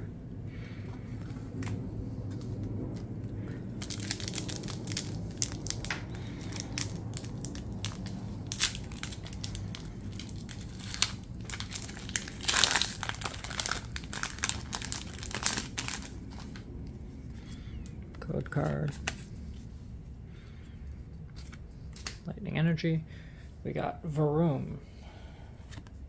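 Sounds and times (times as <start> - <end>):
foil wrapper crinkling and tearing: 3.7 - 16.7.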